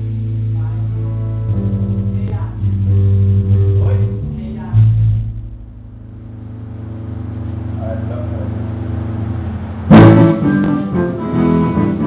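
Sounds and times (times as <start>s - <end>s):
electric string instrument low note: 0.0s - 12.0s.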